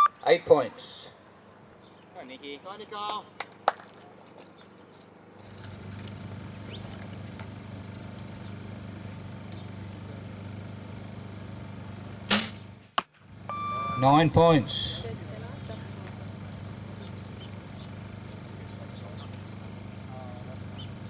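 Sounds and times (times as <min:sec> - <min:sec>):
steady low hum: 0:04.7 - 0:21.0
bow string crack: 0:12.3 - 0:12.7.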